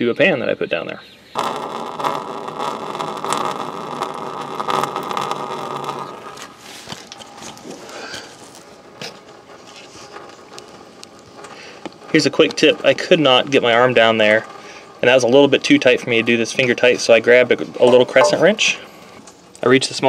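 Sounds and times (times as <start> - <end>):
coolant draining into a pan: 1.4 - 6.6, 7.8 - 19.1.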